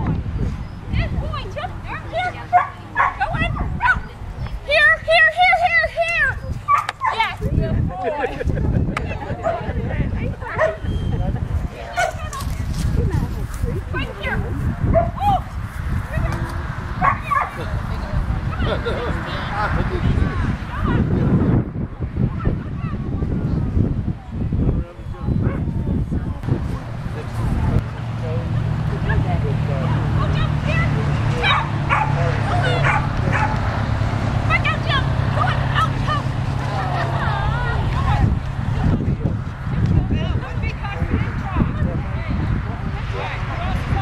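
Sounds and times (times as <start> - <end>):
dog yipping: 12.0 - 12.3, 17.0 - 17.6, 31.4 - 33.6.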